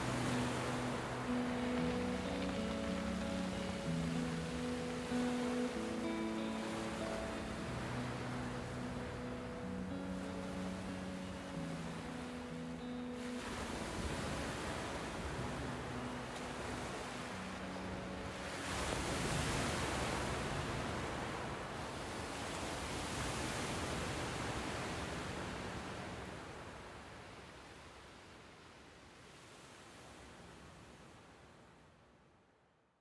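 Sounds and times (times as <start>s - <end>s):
low held chord: 0.0s - 19.4s
surf-like wash of noise: 0.0s - 31.8s.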